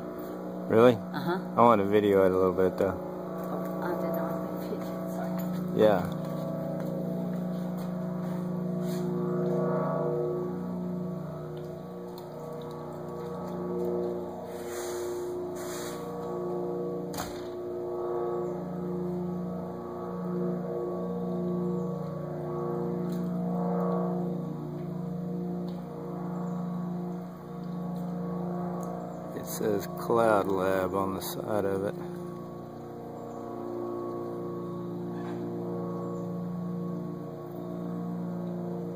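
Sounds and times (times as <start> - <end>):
blimp engines droning overhead: 0.0 - 38.9.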